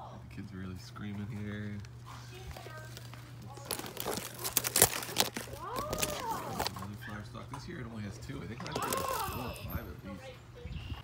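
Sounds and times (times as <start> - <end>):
sharp crackles and clicks: 1.8 - 6.8.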